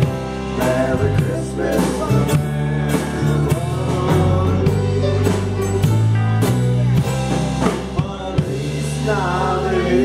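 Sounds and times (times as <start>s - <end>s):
man singing: 0.0s - 6.0s, 7.0s - 10.0s
live band playing: 0.0s - 10.0s.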